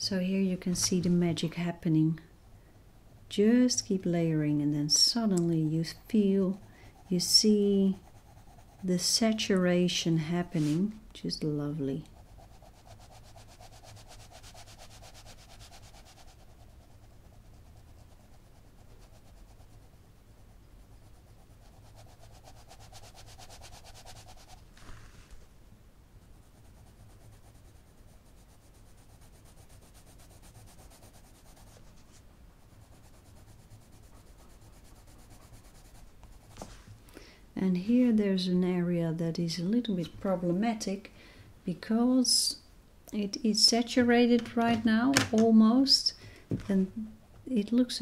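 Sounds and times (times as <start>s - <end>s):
coloured pencil rubbing on paper: 4.6s - 10.9s, 11.5s - 25.0s, 26.2s - 36.7s.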